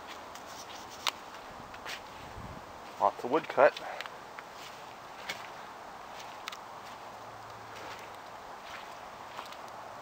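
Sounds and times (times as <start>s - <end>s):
footsteps crunching on wood chips: 0.0s - 9.8s
low steady hiss: 0.0s - 10.0s.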